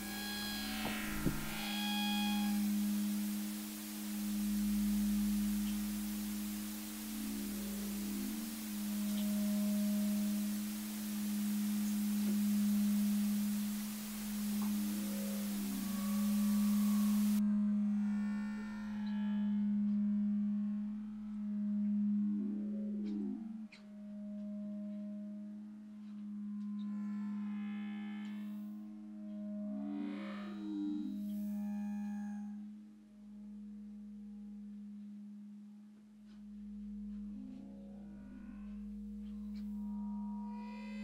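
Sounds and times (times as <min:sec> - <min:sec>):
high hiss: 0:00.0 - 0:17.4
eerie low drone: 0:00.0 - 0:41.0.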